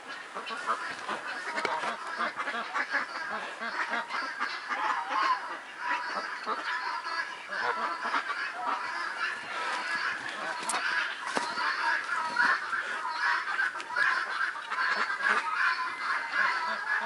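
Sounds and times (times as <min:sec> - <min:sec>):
many birds chattering: 0:00.0 - 0:17.0.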